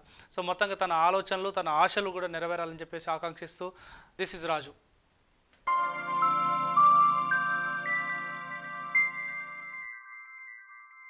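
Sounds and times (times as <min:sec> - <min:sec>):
low synth chord: 0:05.7 - 0:09.8
bell-like chime notes: 0:05.7 - 0:11.0.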